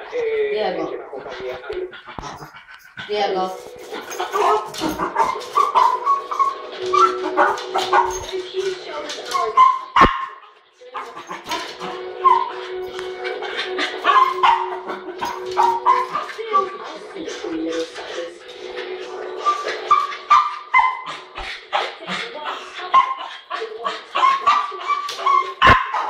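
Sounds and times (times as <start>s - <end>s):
tv soundtrack: 0.0s - 26.0s
steady background tone: 2.4s - 9.4s, 11.3s - 21.8s
small dog barking and whining: 4.4s - 8.3s, 9.3s - 11.6s, 12.2s - 12.5s, 14.0s - 16.6s, 19.4s - 21.2s, 24.2s - 26.0s.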